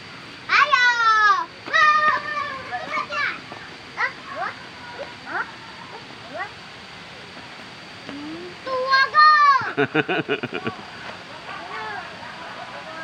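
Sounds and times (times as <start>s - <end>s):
children squealing and calling: 0.5s - 5.9s.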